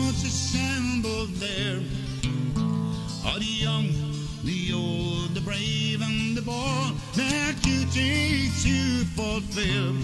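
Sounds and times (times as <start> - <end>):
acoustic guitar: 0.0 - 10.0
man singing folk ballad: 0.0 - 10.0.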